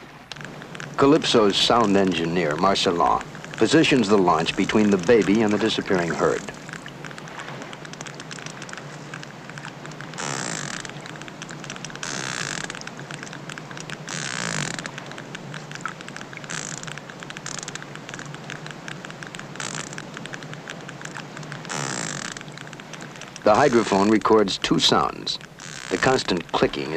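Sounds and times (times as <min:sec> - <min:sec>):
whale clicking: 0:00.0 - 0:26.9
whale rasping growl: 0:02.9 - 0:06.8.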